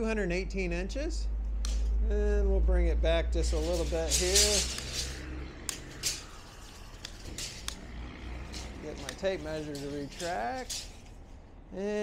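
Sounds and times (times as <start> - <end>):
tape measure clicks: 1.6 - 1.9, 3.5 - 11.2.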